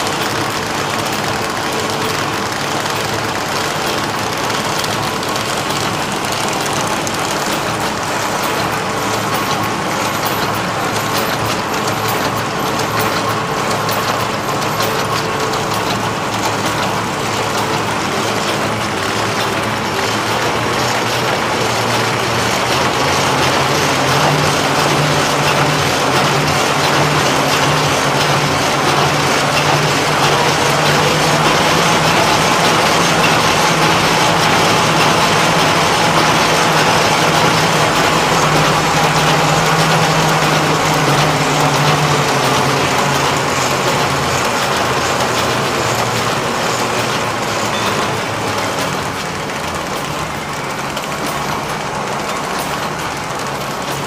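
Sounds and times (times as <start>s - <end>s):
machine clatter: 0.0s - 54.0s.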